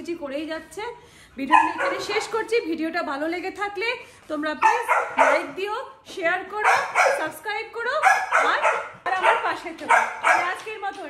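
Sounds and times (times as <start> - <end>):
woman talking: 0.0 - 11.0
dog barking: 1.5 - 2.4, 4.6 - 5.6, 6.6 - 7.4, 8.0 - 10.7.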